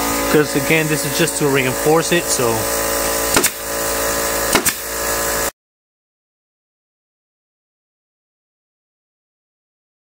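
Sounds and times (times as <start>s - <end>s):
steady mechanical hum: 0.0s - 5.5s
staple gun firing: 3.3s - 3.6s, 4.5s - 4.9s.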